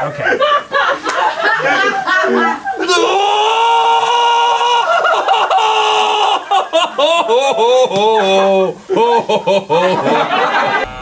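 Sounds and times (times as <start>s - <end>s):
man's high-pitched laughter: 1.5s - 11.0s.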